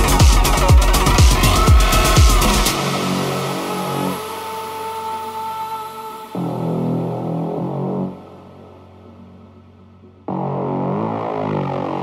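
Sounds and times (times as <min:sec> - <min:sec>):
steady high synth note: 0:00.0 - 0:09.4
sustained synthesizer tones: 0:00.0 - 0:12.0.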